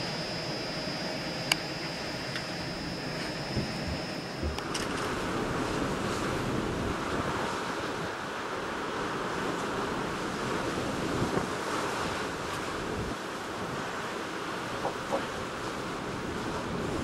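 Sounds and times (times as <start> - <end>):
rough sea surf rushing: 0.0 - 17.0
wind noise on microphone: 3.0 - 8.3, 9.2 - 17.0.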